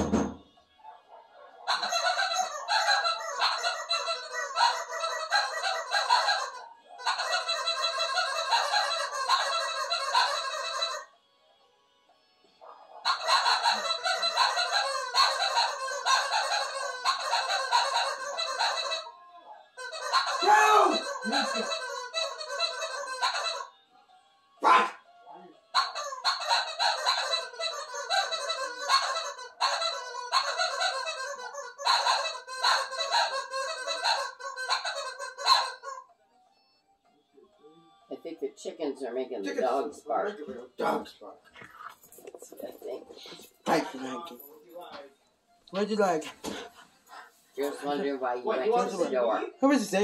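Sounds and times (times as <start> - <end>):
music: 0.0 - 50.0
honking bird-like calls: 1.7 - 11.2, 12.5 - 23.8, 24.6 - 25.1, 25.7 - 36.1
voices: 12.6 - 23.7, 24.6 - 25.7, 37.4 - 50.0.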